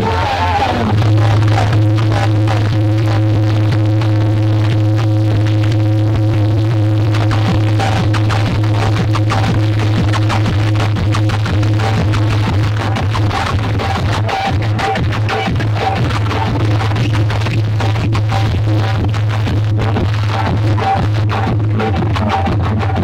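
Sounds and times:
loud electronic dance music: 0:00.0 - 0:23.0.

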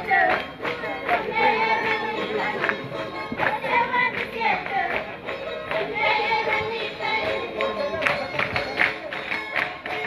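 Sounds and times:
folk dance music: 0:00.0 - 0:10.0.

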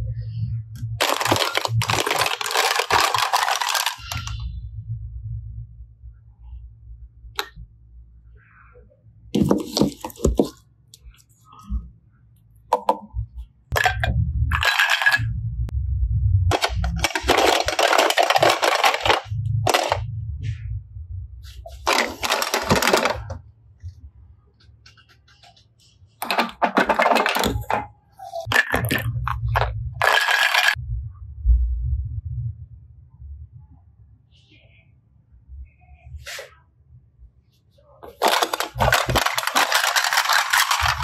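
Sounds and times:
plastic cases clattering: 0:01.0 - 0:04.3, 0:09.4 - 0:10.6, 0:13.7 - 0:15.2, 0:16.5 - 0:20.0, 0:21.7 - 0:23.4, 0:26.2 - 0:30.8, 0:38.0 - 0:41.0.

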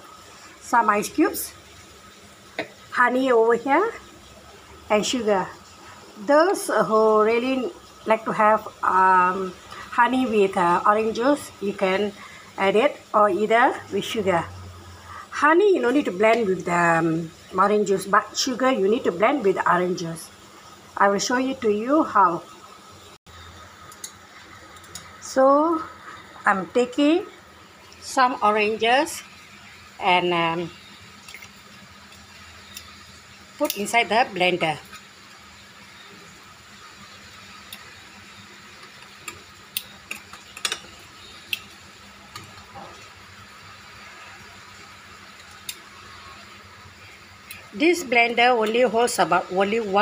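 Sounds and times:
faint hiss and hum: 0:00.0 - 0:50.0.

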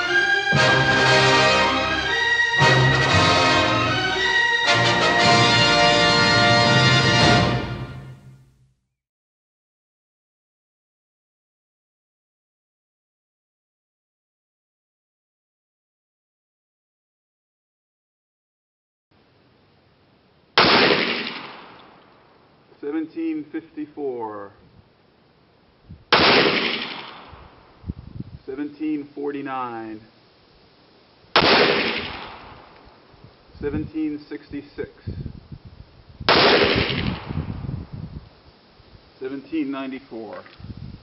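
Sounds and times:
pistol shot with echo: 0:20.6 - 0:22.0, 0:26.1 - 0:27.6, 0:31.4 - 0:32.8, 0:36.3 - 0:37.4.

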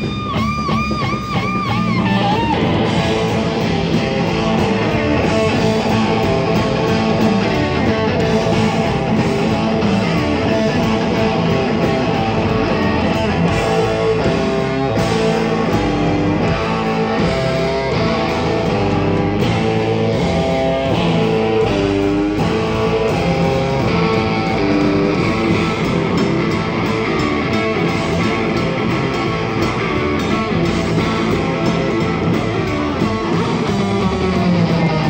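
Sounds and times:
blues band playing: 0:00.0 - 0:35.0.

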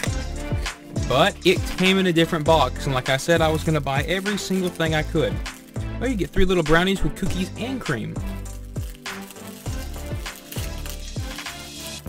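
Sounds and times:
background music: 0:00.0 - 0:12.0
plastic wrapper crackling: 0:00.0 - 0:12.0.

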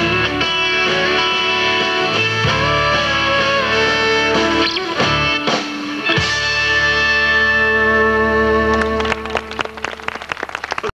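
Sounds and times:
guitar chord ringing: 0:00.0 - 0:09.1.

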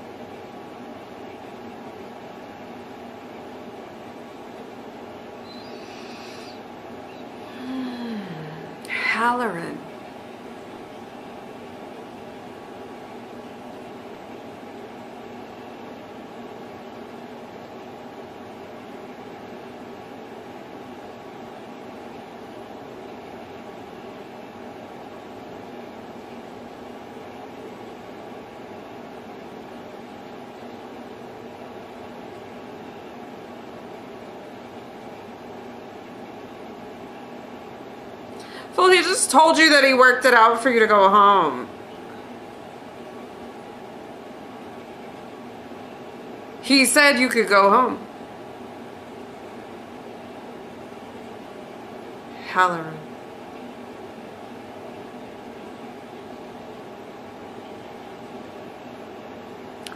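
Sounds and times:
hiss and hum: 0:00.0 - 0:39.8.

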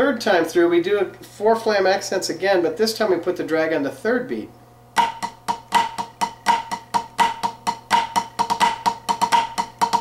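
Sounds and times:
drumsticks on practice pad: 0:05.0 - 0:10.0.

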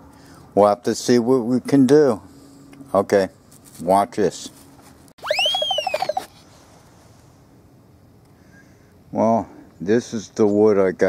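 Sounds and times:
fast electronic pulse: 0:05.2 - 0:06.2
electronic sweeping tone effect: 0:05.2 - 0:06.3.

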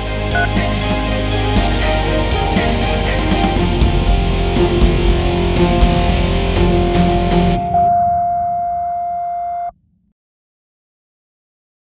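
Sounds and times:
steady electronic tone: 0:04.2 - 0:10.1.

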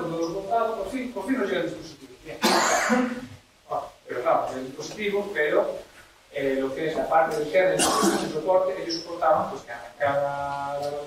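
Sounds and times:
person coughing: 0:02.4 - 0:03.2, 0:07.8 - 0:08.4.

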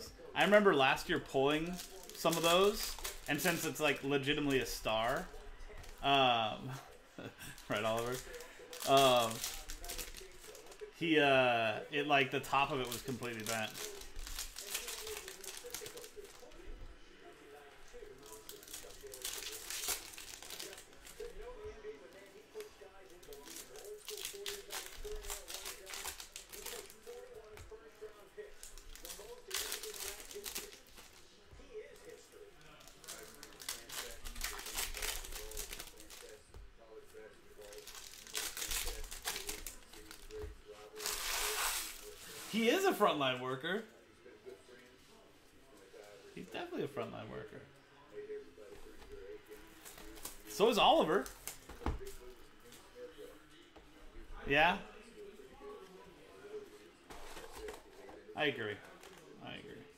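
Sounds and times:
foil wrappers crinkling and tearing: 0:00.4 - 0:06.4, 0:07.2 - 0:10.9, 0:12.0 - 0:16.7, 0:17.8 - 0:43.1, 0:48.8 - 0:52.3.

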